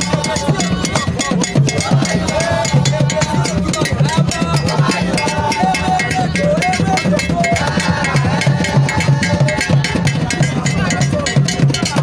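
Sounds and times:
hand percussion music: 0.0 - 12.0
repeating bass pattern: 0.0 - 12.0.

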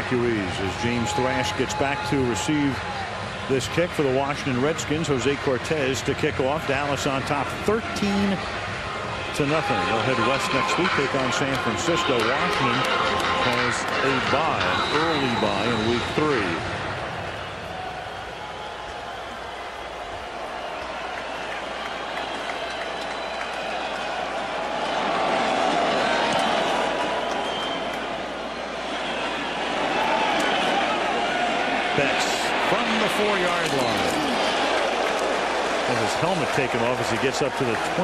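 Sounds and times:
stadium crowd noise: 0.0 - 38.0.

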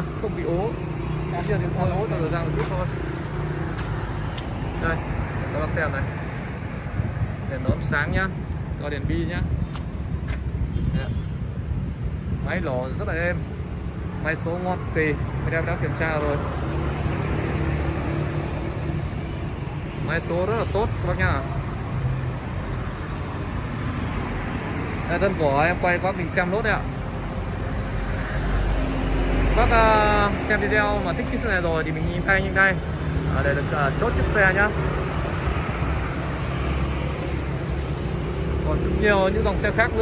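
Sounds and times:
street noise: 0.0 - 40.0.

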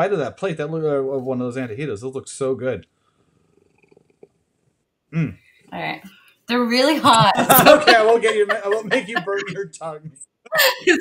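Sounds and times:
cat purring: 3.0 - 4.8.

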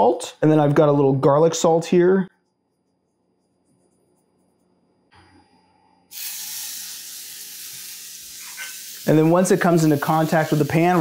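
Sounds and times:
burger patty sizzling in a skillet: 6.1 - 11.0.

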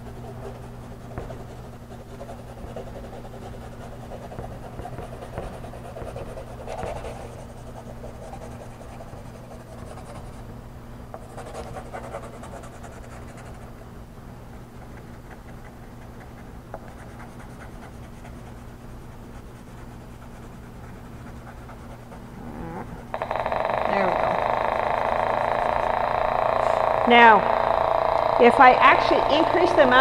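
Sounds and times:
pencil scratching on paper: 0.0 - 10.4, 11.2 - 13.7, 14.8 - 22.2
loud steady buzzing tone: 0.0 - 13.6, 22.4 - 30.0
wavering sliding tones: 22.4 - 30.0.

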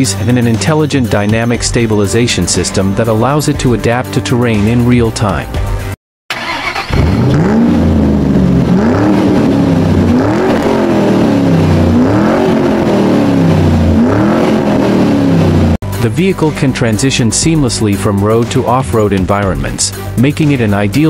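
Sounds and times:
car engine revving: 6.3 - 15.9.

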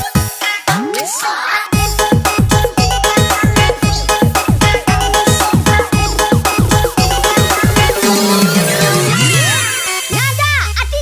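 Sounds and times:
dance remix music: 0.0 - 11.0.

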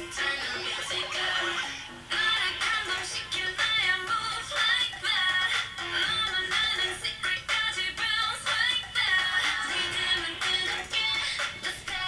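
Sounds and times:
dance-pop song with female vocals: 0.0 - 12.0.

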